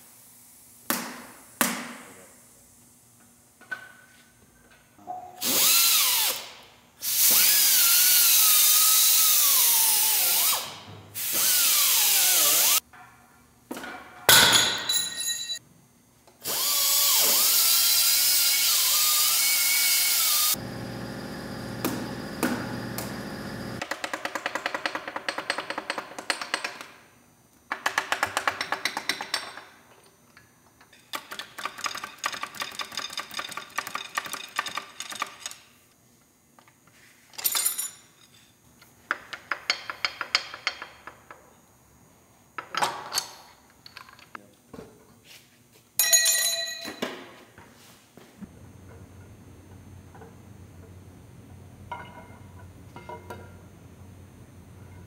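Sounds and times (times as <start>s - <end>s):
power wrench whining: 5.4s - 12.8s.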